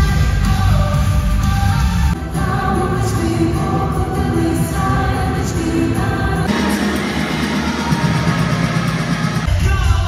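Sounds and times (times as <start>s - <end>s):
live music with singing: 0.0s - 10.0s
song with heavy bass beat: 0.0s - 10.0s.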